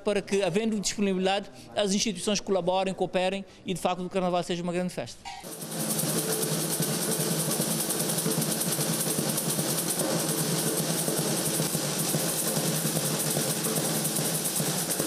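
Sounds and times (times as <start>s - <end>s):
snare drums: 5.4s - 15.0s.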